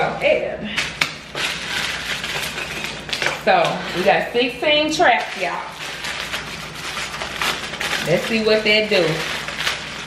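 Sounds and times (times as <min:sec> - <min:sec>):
plastic packaging crinkling: 0:01.0 - 0:10.0.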